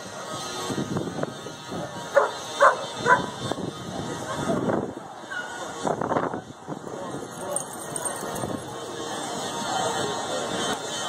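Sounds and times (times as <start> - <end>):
people chattering: 0.0 - 11.0
dog barking: 2.2 - 3.4.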